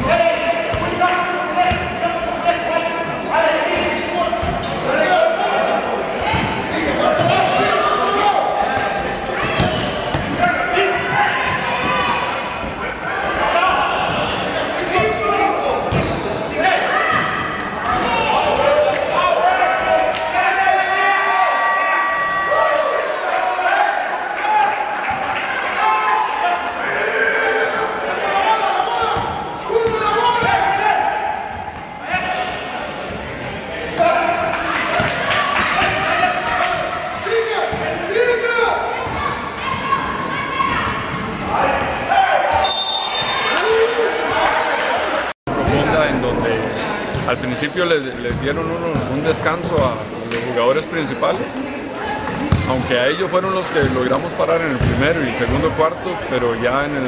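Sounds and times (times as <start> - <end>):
players and spectators calling out: 0.0 - 57.0.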